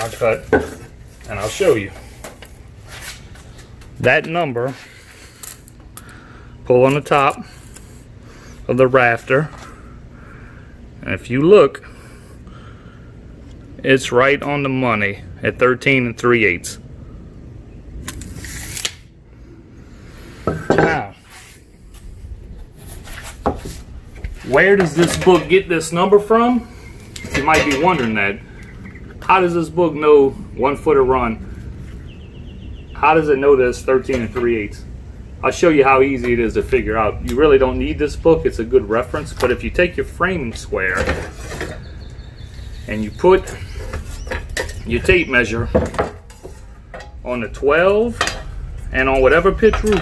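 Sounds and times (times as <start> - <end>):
low steady rumble: 5.0 - 18.5, 19.1 - 50.0
tape measure retracting: 18.1 - 19.1.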